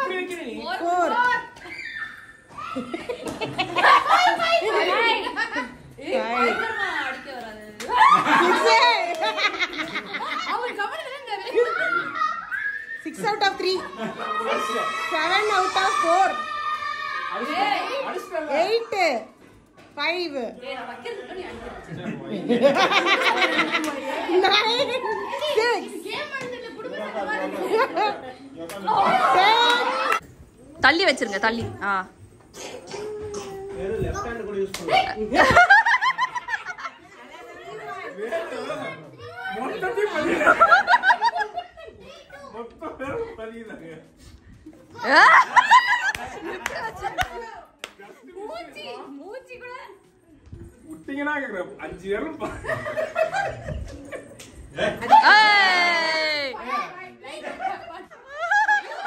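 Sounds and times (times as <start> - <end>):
people chattering: 0.0 - 59.0
people laughing: 2.6 - 6.6, 7.8 - 12.7, 13.6 - 15.7, 21.3 - 30.2, 35.2 - 42.2, 44.7 - 48.5, 52.3 - 59.0.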